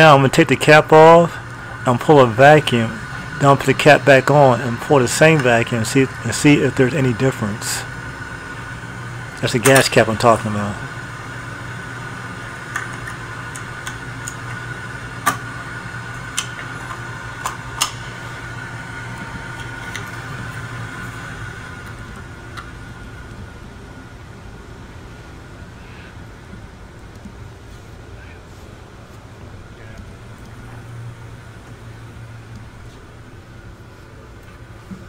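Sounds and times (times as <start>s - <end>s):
faint steady whine: 0.0s - 35.0s.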